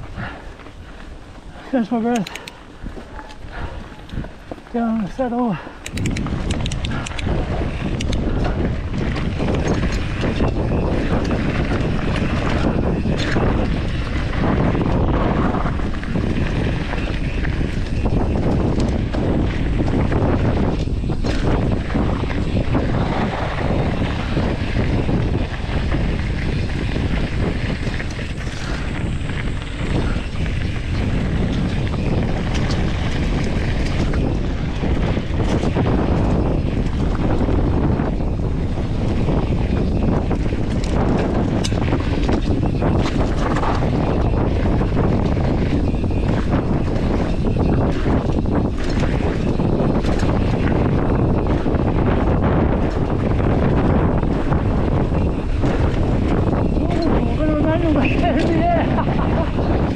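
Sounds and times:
bike tyre rumble: 0.0 - 59.9
wind buffeting microphone: 0.0 - 59.9
bike rattles and knocks: 5.8 - 59.9.

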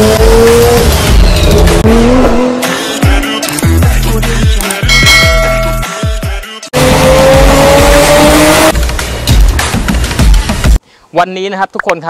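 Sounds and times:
sports car engine revving: 0.0 - 3.1, 6.8 - 8.8.

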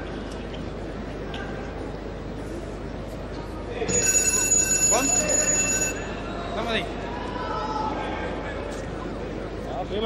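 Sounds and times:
electronic buzzer high tone: 3.9 - 6.3.

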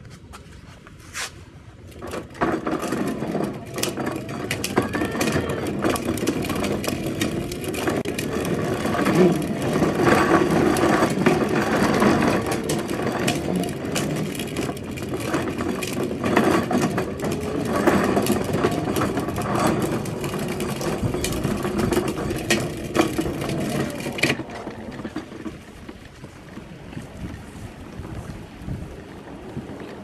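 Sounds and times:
plastic wheels rolling on concrete: 0.0 - 30.0
clicks and knocks: 1.9 - 26.0.

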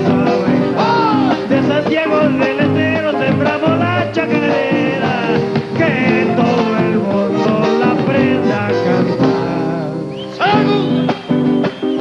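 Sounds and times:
bass drum beats: 0.0 - 9.6
man singing: 0.0 - 11.2
nylon-string guitar: 0.0 - 12.0.

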